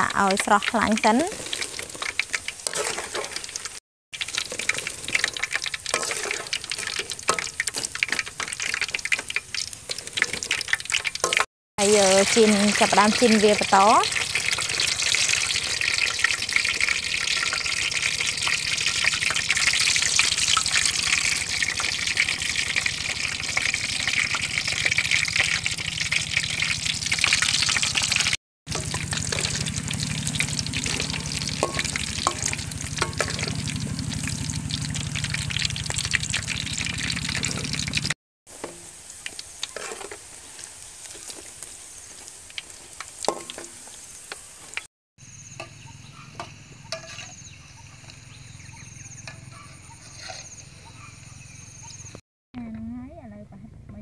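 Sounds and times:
oil sizzling and crackling: 0.0 - 51.5.

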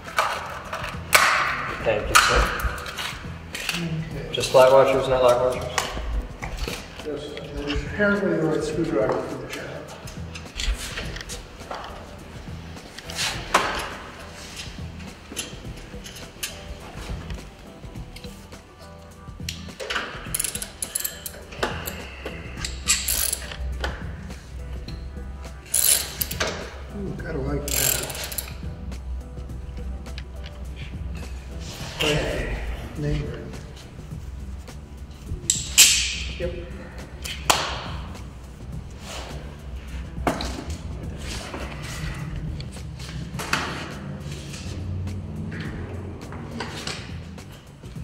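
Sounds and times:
metallic clanks: 19.5 - 24.0
ratchet wrench clicking: 20.3 - 22.0, 22.6 - 23.6, 25.6 - 26.6, 27.7 - 28.6.

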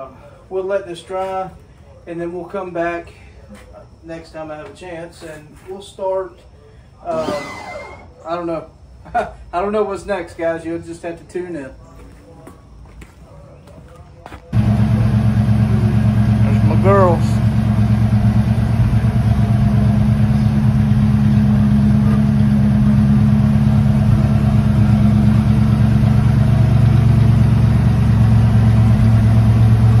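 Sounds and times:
rising-and-falling call: 7.1 - 8.3
car engine idling: 14.5 - 30.0.

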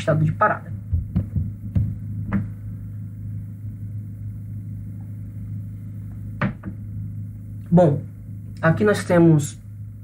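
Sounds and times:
low-pitched hum: 0.0 - 10.0.

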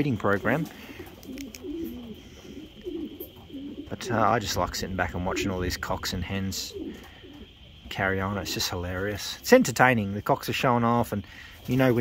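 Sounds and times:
pigeons cooing: 0.0 - 9.5.

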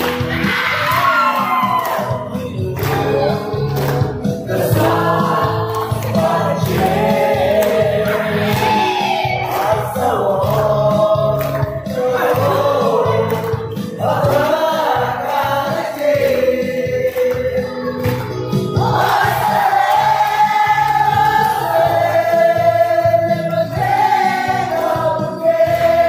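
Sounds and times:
pop song with sung vocals: 0.0 - 26.0.

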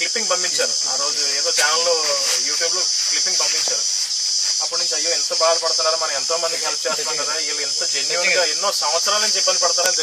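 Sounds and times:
man speaking: 0.0 - 4.0, 4.6 - 10.0
insects chirring: 0.0 - 10.0.

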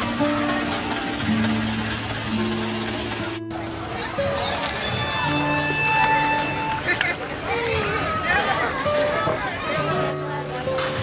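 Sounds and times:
background music with held notes: 0.0 - 11.0
crowd voices: 0.0 - 11.0.

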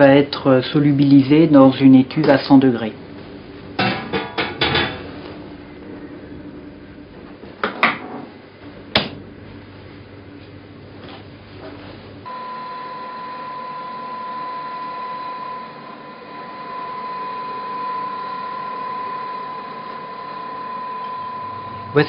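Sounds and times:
high electrical whine: 12.2 - 22.0.

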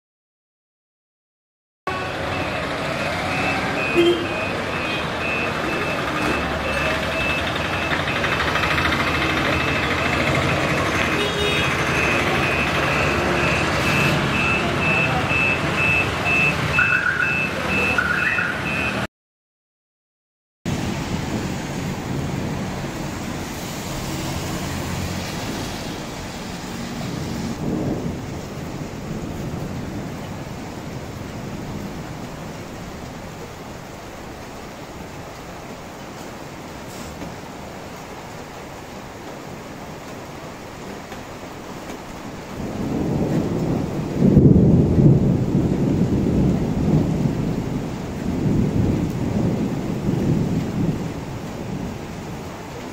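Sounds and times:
rain on wet road: 1.9 - 19.1, 20.7 - 52.9
street traffic: 1.9 - 19.1, 20.7 - 52.9
vehicle reversing beeper: 2.0 - 19.1
horn tooting: 3.3 - 7.3, 10.6 - 19.1.

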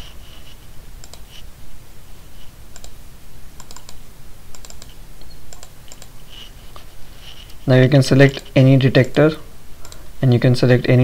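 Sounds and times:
computer clicking: 1.0 - 1.4, 2.7 - 3.0, 3.6 - 6.5, 9.8 - 10.1.

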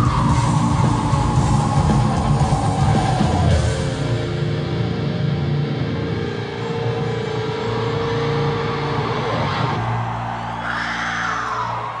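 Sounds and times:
heavy metal band playing: 0.0 - 12.0.

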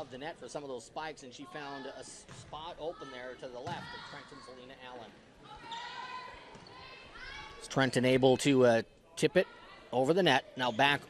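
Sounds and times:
faint voices in a hall: 0.0 - 11.0
volleyball thumps: 3.5 - 4.0.

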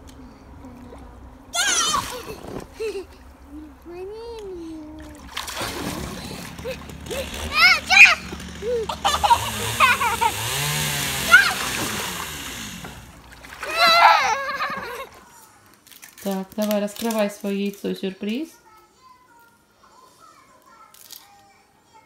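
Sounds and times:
children's voices calling: 0.0 - 15.4
water splashing in paddling pool: 0.6 - 15.3.

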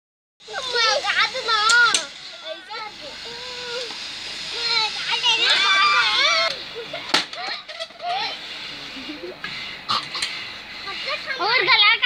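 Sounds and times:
boys laughing and squealing: 0.5 - 9.6.

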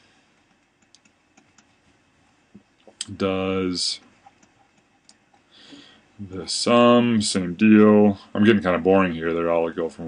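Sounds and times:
soft hiss: 0.0 - 10.0.

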